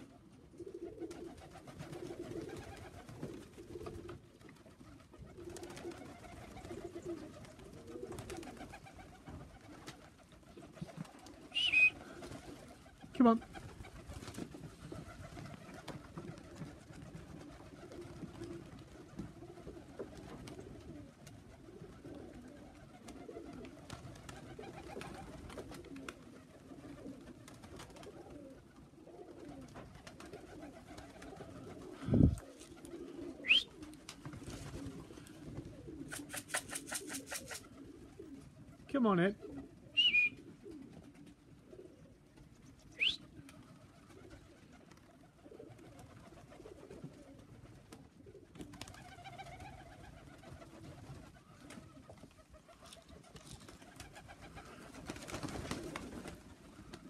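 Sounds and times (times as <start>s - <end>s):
pigeons cooing: 0.0s - 57.0s
falling whistle: 11.5s - 12.0s, 33.4s - 33.7s, 40.0s - 40.4s.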